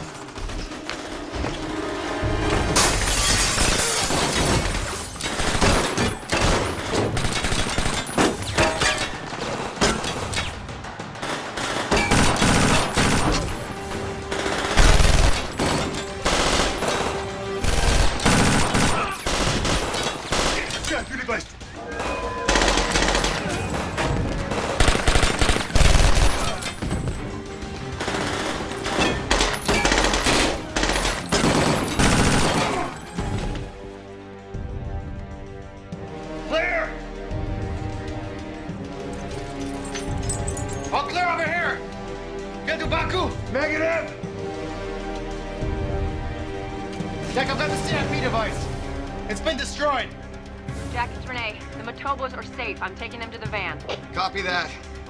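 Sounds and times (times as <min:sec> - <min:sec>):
music: 0:00.0 - 0:55.0
rapid gunfire: 0:05.3 - 0:08.4, 0:09.4 - 0:20.7, 0:22.5 - 0:26.6, 0:27.8 - 0:33.0.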